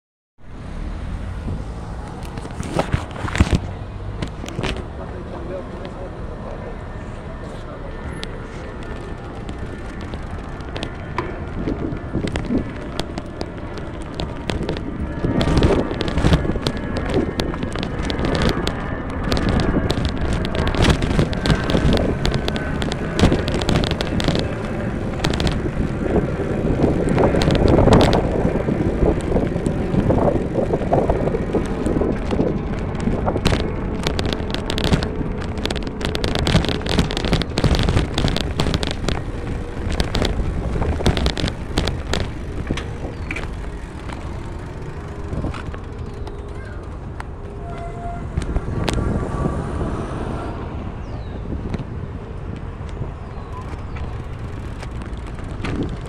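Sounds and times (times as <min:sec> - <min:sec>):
street traffic: 0:00.4 - 0:56.0
wind on microphone: 0:01.3 - 0:06.1, 0:07.9 - 0:56.0
clicks and rattles: 0:08.2 - 0:47.6, 0:53.6 - 0:56.0.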